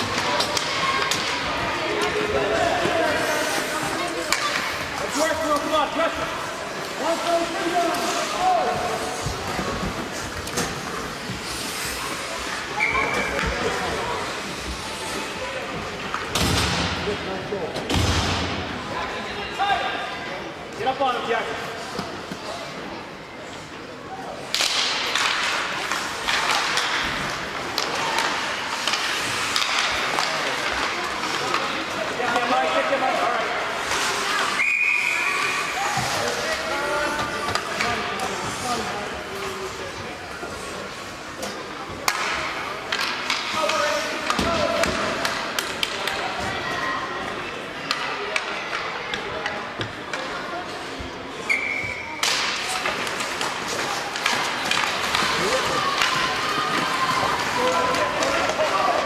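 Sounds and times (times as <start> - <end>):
hockey sticks and skates on ice: 0.0 - 20.0, 20.7 - 59.0
spectators' voices: 0.0 - 59.0
referee's whistle: 34.6 - 35.3, 51.5 - 52.1.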